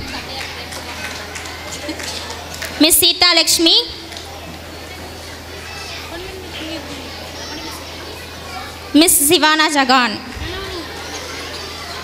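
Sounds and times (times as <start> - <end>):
children chattering: 0.0 - 2.8, 3.8 - 12.0.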